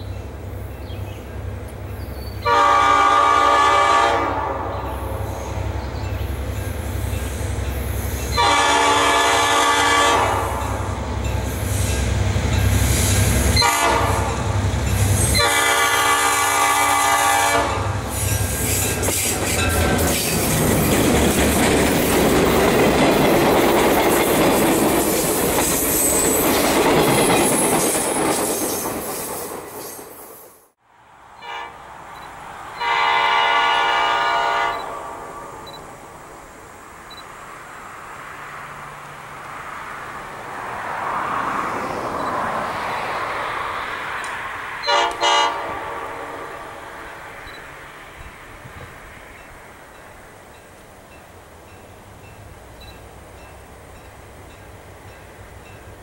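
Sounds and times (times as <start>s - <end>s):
locomotive engines rumbling: 0.0s - 30.2s
train air horn blasts: 2.4s - 5.3s, 8.3s - 10.9s, 12.9s - 14.5s, 15.2s - 20.2s, 31.4s - 31.9s, 32.8s - 35.7s, 44.8s - 46.6s
wheels clicking over rail joints: 18.2s - 30.2s.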